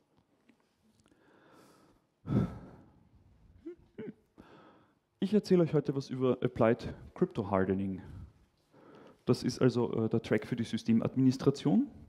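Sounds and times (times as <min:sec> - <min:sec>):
breathy sigh into microphone: 0:02.2 - 0:02.9
short vocal sound: 0:03.6 - 0:04.3.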